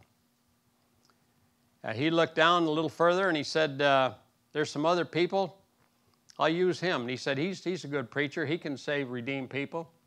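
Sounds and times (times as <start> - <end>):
faint low hum: 0.0 - 10.0
man speaking: 1.8 - 5.6, 6.3 - 10.0.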